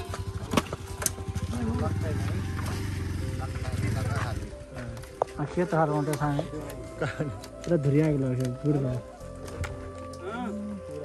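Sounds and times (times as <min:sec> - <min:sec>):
motorbike engine running: 0:00.0 - 0:04.9
people talking: 0:03.2 - 0:09.0.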